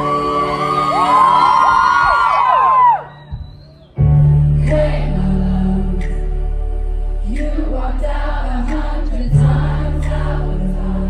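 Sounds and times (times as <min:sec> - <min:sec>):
audience screaming and whooping: 0:00.0 - 0:04.0.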